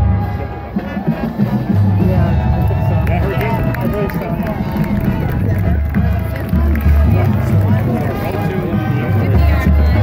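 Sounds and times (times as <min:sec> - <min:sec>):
marching band playing: 0:00.0 - 0:10.0
spectators talking: 0:00.0 - 0:10.0.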